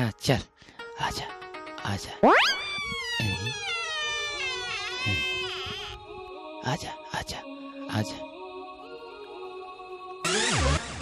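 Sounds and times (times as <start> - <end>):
background music: 0.0 - 11.0
high-pitched wail sliding downward: 2.2 - 6.0.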